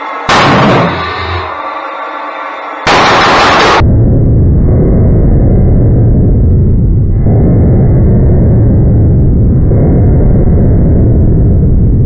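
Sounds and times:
pulse jet engine deep drone: 0.0 - 12.0.

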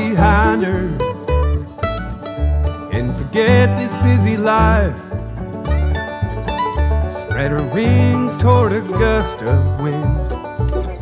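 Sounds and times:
bluegrass string band: 0.0 - 11.0.

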